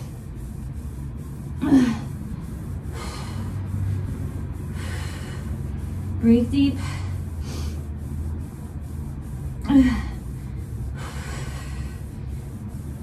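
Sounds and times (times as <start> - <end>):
low steady hum: 0.0 - 13.0
woman breathing hard: 1.4 - 8.5, 9.6 - 13.0
woman gasping: 1.5 - 2.2, 9.6 - 12.1.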